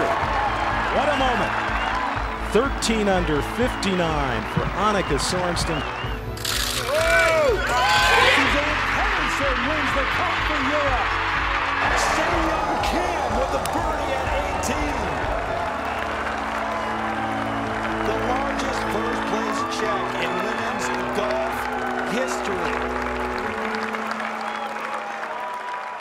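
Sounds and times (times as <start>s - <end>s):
music with long held notes: 0.0s - 25.5s
crowd cheering and applauding: 0.0s - 26.0s.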